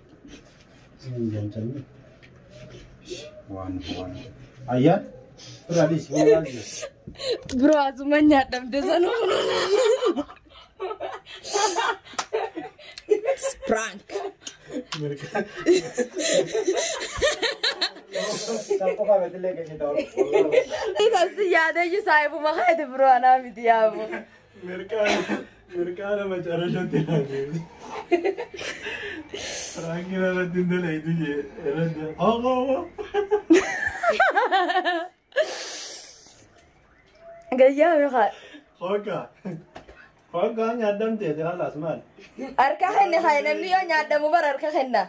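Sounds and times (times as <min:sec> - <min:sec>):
people talking and chuckling: 0:05.2 - 0:07.8, 0:08.8 - 0:21.4, 0:23.8 - 0:36.3
man laughing: 0:14.7 - 0:19.1.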